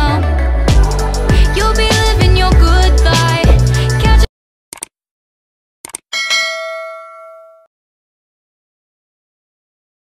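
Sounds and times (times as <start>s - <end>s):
bell ding: 6.1s - 7.7s.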